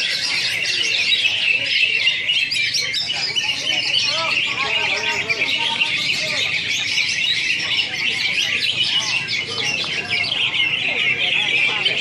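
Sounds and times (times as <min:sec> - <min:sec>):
birds singing in chorus: 0:00.0 - 0:12.0
faint voices: 0:00.0 - 0:12.0.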